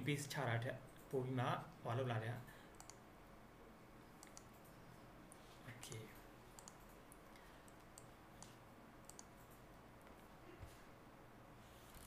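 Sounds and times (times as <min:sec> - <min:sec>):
computer mouse clicks: 0:02.7 - 0:03.0, 0:04.2 - 0:10.3.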